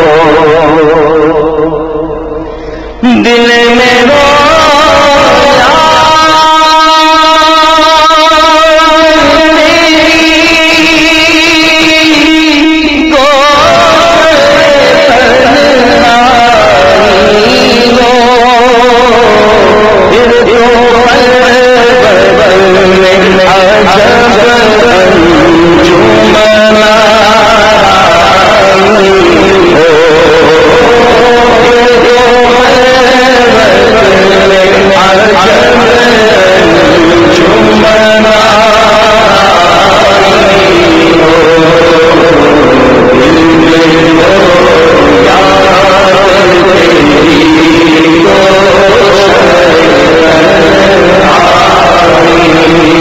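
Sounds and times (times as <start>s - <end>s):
man reciting a long held note: 0.0s - 53.0s
men singing devotional song: 2.9s - 53.0s.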